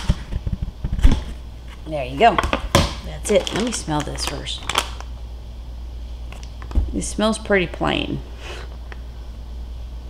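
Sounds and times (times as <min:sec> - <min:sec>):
steady low hum: 0:00.0 - 0:10.0
paper bag handled: 0:03.0 - 0:04.9.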